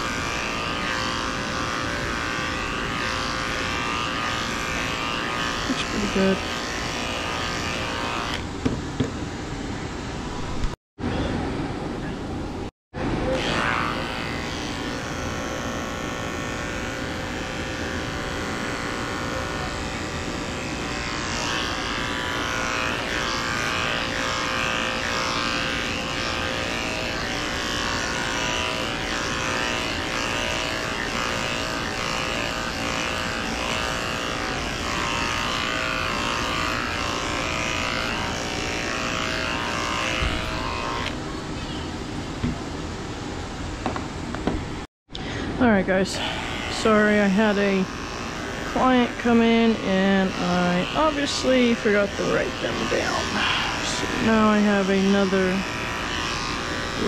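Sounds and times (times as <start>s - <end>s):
electric clippers running: 0.0s - 9.0s, 13.1s - 41.4s, 45.6s - 57.0s.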